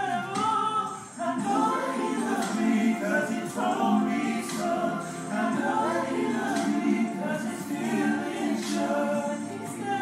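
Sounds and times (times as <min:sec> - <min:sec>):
choir singing unaccompanied: 0:00.0 - 0:10.0.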